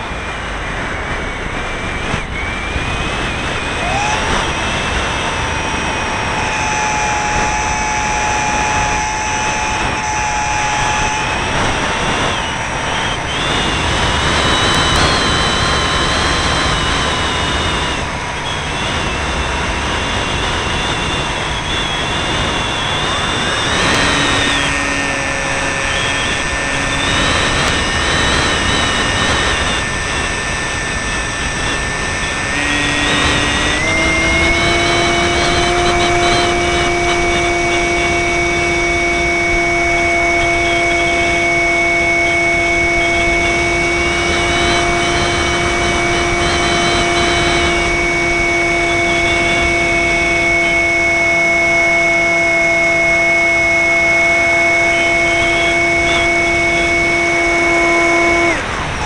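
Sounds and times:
rushing air: 0:00.0 - 0:50.8
electric motor and propeller whine: 0:00.0 - 0:59.0.

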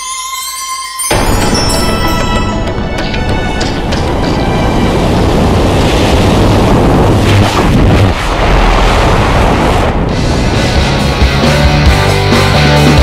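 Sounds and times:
wind buffeting microphone: 0:02.7 - 0:10.8.

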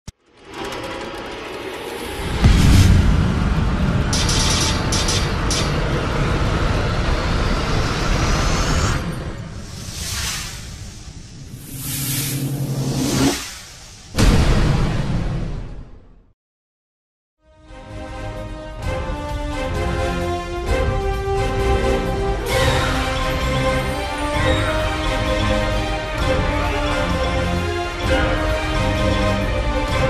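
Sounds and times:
noisy fluttering rumble: 0:00.2 - 0:14.1
whoosh: 0:01.1 - 0:16.0.

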